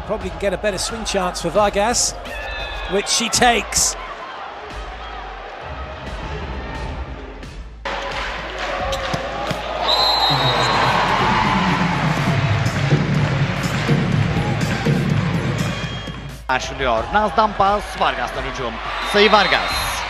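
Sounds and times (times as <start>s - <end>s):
arena crowd noise: 0.0s - 20.0s
volleyball hits: 8.0s - 10.7s.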